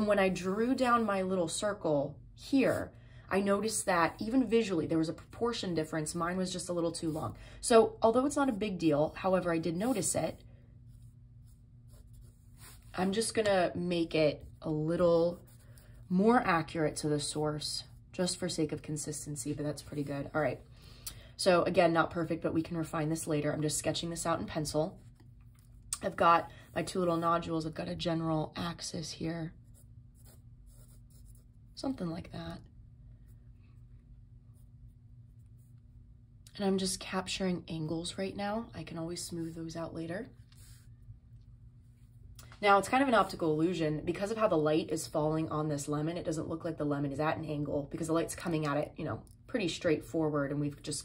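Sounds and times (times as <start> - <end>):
low steady hum: 0.0 - 51.0
pencil scratching on paper: 9.2 - 18.3, 29.6 - 31.7.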